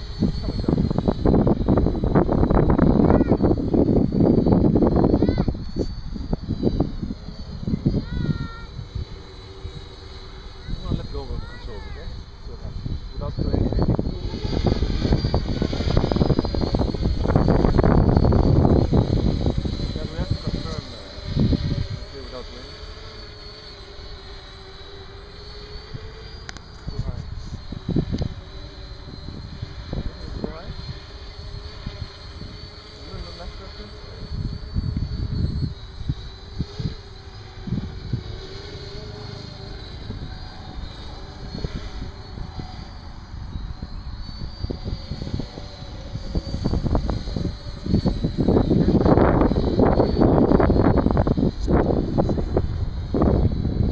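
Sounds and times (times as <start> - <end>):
drone motors and propellers humming: 0.0 - 53.9
wind buffeting microphone: 0.0 - 53.9.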